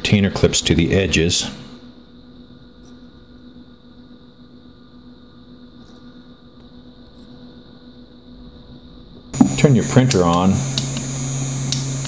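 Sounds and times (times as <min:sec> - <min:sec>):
electrical hum: 0:00.0 - 0:12.0
thin high whine: 0:00.0 - 0:12.0.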